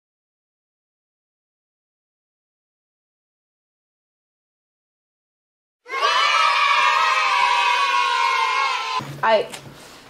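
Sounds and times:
children cheering: 5.9s - 9.0s.

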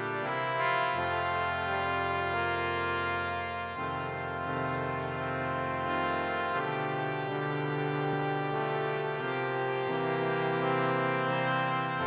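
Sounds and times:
slow organ-like keyboard chords: 0.0s - 12.0s.

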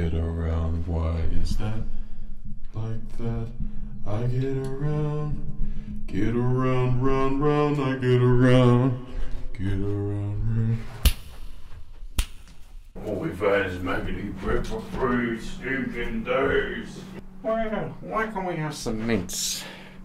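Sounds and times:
man singing wordless tune: 0.0s - 2.0s, 2.6s - 11.0s.

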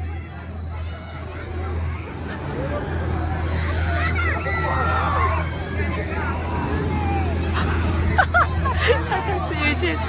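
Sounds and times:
crowd chatter: 0.0s - 10.0s
steady low hum: 0.0s - 10.0s
riders shrieking: 4.2s - 7.0s.

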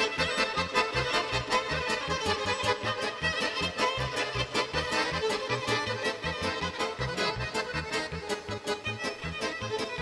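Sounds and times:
accordion: 0.0s - 10.0s
violin: 0.0s - 10.0s.

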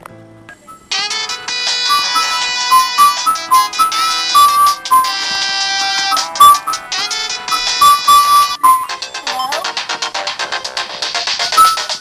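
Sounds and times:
faint soft music: 0.0s - 12.0s
phone ringtone melody: 0.6s - 9.8s, 11.0s - 12.0s.

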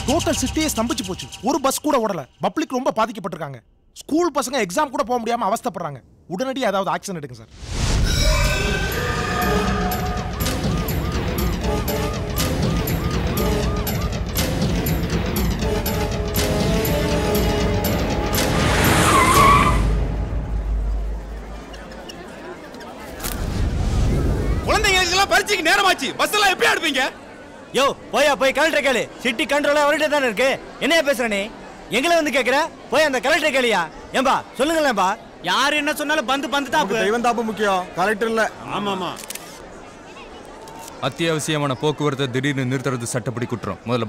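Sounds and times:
bus tyres screeching: 18.4s - 23.2s
low crowd murmur: 20.0s - 24.7s, 25.5s - 28.2s, 28.8s - 44.0s
camera shutters clicking: 39.2s - 39.6s, 40.6s - 41.0s.

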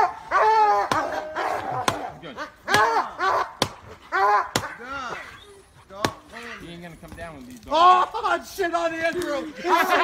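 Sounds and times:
dogs barking: 0.0s - 5.3s.

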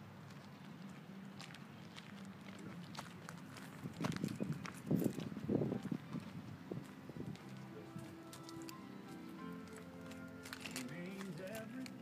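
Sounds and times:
soft background music: 5.4s - 12.0s.

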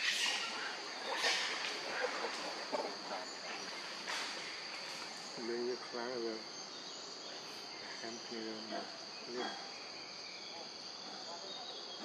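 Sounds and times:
wavering voice-like calls: 0.0s - 3.6s
high buzzing of insects: 0.0s - 12.0s.

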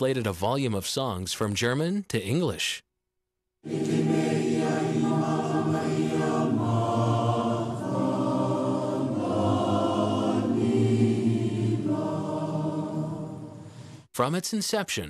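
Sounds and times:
choir singing a hymn: 3.6s - 14.0s.

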